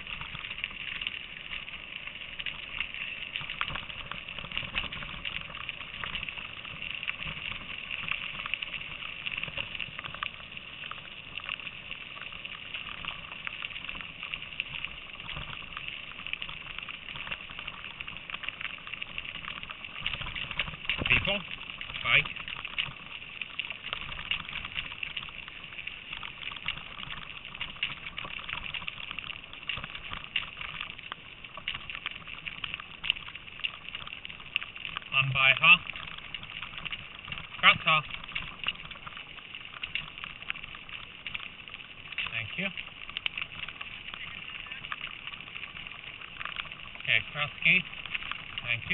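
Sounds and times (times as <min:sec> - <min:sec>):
bicycle tyres rolling on gravel: 0:00.0 - 0:48.9.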